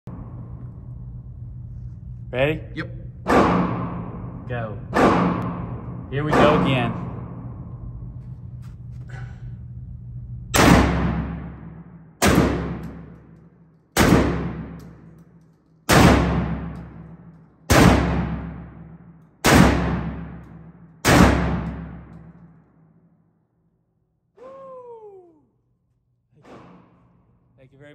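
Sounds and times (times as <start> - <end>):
shotgun blasts echoing: 3.2 - 7.7, 10.6 - 13.2, 14.0 - 15.0, 15.9 - 17.0, 17.7 - 22.1.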